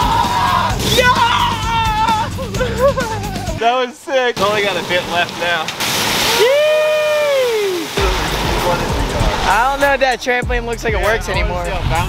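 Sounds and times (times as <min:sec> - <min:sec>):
long drawn-out shout: 0:00.0 - 0:02.8, 0:06.2 - 0:08.0
water pouring and splashing: 0:04.4 - 0:10.4.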